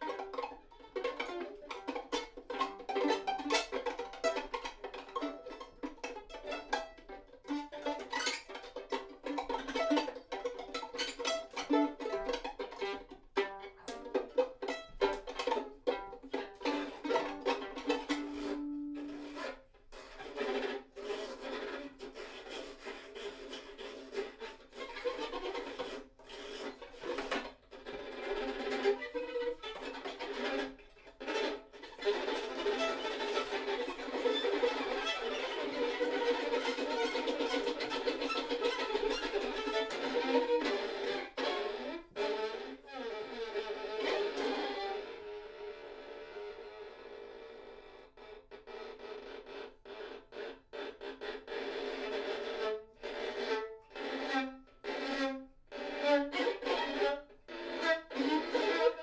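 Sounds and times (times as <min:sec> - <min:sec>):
two violins bowed duet: 0:00.0 - 0:59.0.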